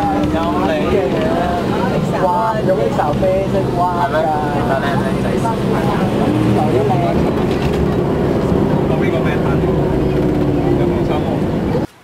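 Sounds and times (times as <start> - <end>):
people's voices: 0.0 - 11.9
vehicle rumbling: 0.0 - 12.0.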